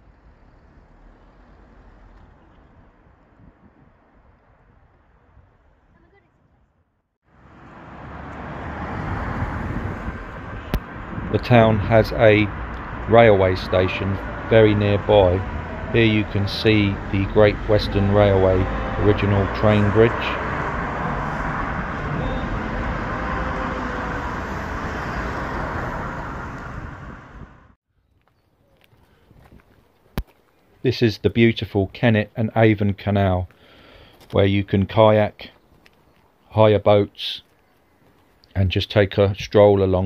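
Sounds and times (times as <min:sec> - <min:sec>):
vehicle traffic noise: 0:00.0 - 0:04.4, 0:07.2 - 0:27.8, 0:33.5 - 0:34.4.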